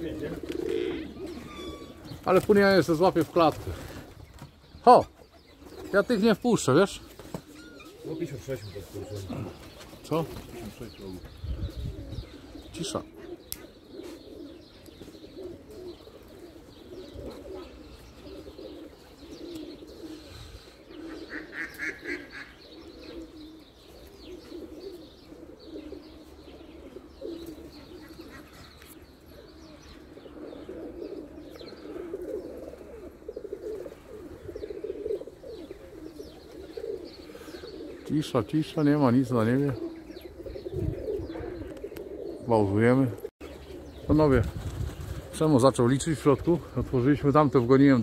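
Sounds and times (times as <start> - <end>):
pigeons cooing: 0.0 - 48.0
higher chirping call: 1.2 - 2.1.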